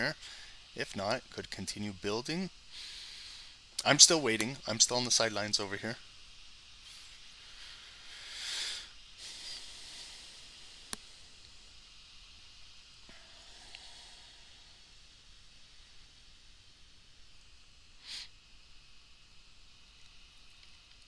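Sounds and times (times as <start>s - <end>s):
faint microphone hiss: 0.0s - 21.0s
exhale into microphone: 6.8s - 11.4s, 13.0s - 15.0s, 18.0s - 18.4s.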